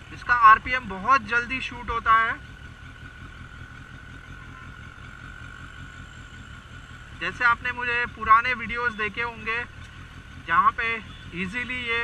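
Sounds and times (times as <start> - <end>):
motorcycle engine low rumble: 0.0 - 12.0.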